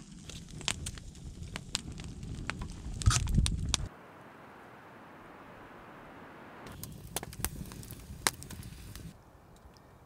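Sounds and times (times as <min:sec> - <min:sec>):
campfire embers crackling: 0:00.0 - 0:10.0.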